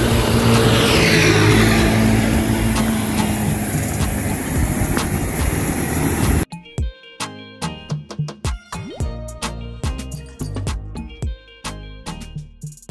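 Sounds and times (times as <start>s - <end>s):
road traffic passing: 0.0s - 6.4s.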